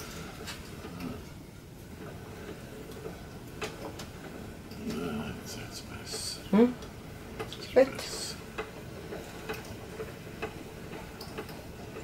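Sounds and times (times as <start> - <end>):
pasta machine crank ticking: 2.0 - 12.0.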